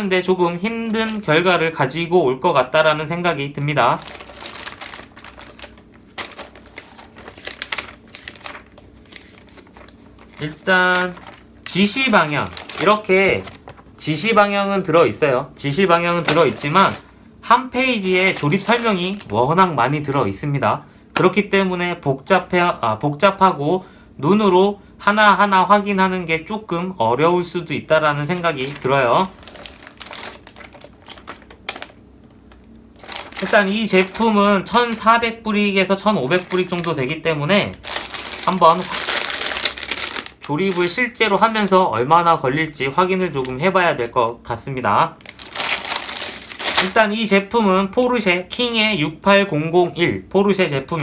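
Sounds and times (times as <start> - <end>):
paper pages rustling: 0.4 - 1.5, 3.9 - 14.2, 16.1 - 17.1, 18.0 - 19.4, 28.2 - 32.0, 33.0 - 35.3, 36.0 - 41.0, 45.2 - 47.0.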